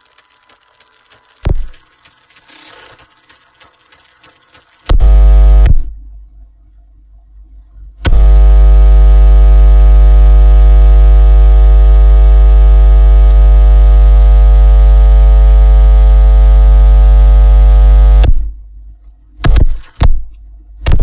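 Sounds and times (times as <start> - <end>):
deep electrical buzz: 1.4 - 1.9, 4.8 - 6.1, 8.0 - 18.7, 19.4 - 21.0.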